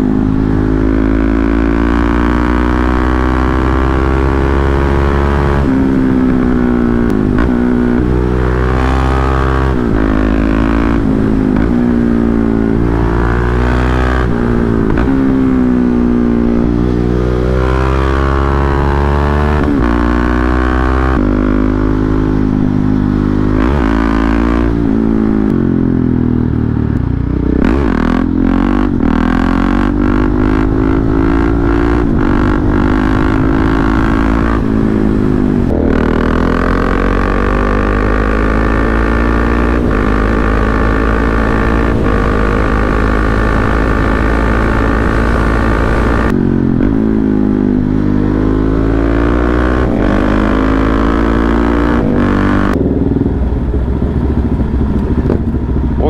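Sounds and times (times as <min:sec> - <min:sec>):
motorcycle engine accelerating: 0:00.0 - 0:56.0.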